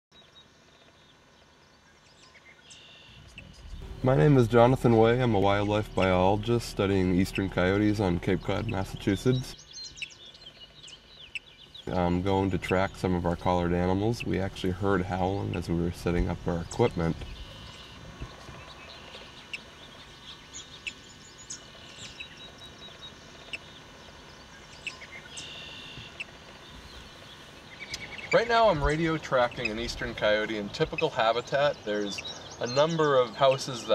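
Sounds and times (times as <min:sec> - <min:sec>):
high bird chirps: 0:00.1 - 0:33.9
low rumble: 0:03.2 - 0:09.6, 0:11.8 - 0:24.8.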